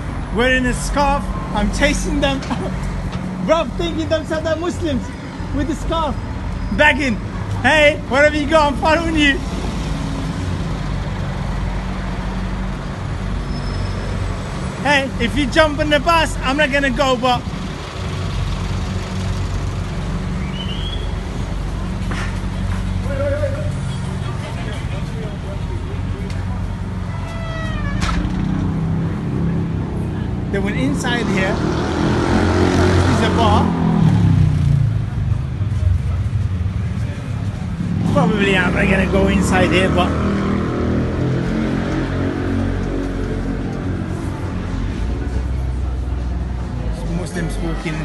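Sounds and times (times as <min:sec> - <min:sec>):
street traffic: 0:00.0 - 0:48.0.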